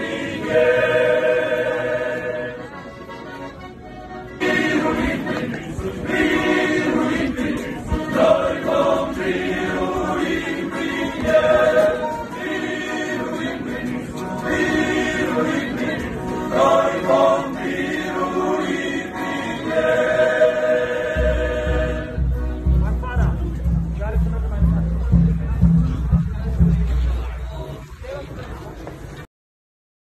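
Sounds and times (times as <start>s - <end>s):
choir singing: 0.0s - 3.0s, 4.3s - 22.7s
low rumble: 21.1s - 27.9s.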